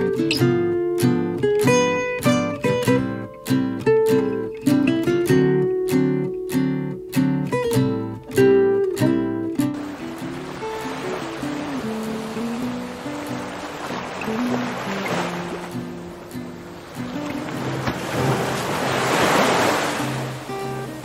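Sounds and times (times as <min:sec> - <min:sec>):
acoustic guitar music: 0:00.0 - 0:21.0
waves washing against rocks: 0:09.8 - 0:15.8, 0:16.8 - 0:21.0.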